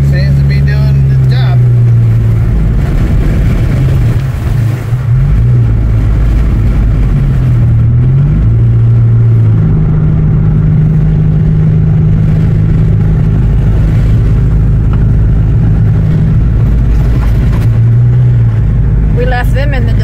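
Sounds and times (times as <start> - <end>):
car engine from inside cabin: 0.0 - 20.0.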